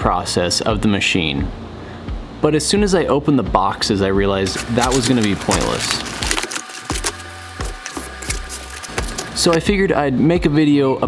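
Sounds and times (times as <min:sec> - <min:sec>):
cardboard and packing material rustling: 0:04.4 - 0:09.6.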